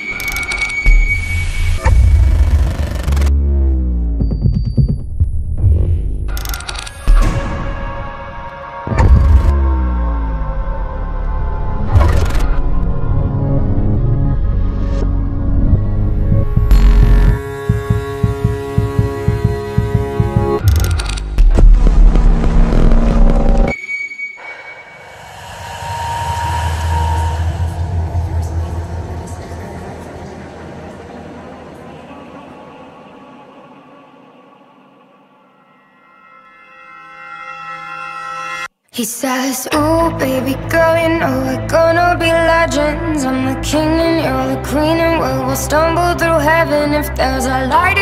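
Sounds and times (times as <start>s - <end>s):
low drone: 7.1s - 37.3s
low throbbing pulses: 8.9s - 23.7s
held chord over throbbing pulse: 15.1s - 20.6s.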